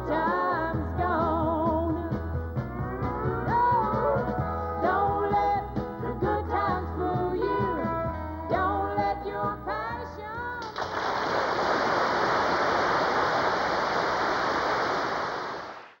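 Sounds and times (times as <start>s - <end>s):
band playing country song: 0.0s - 10.5s
audience applause: 10.8s - 16.0s.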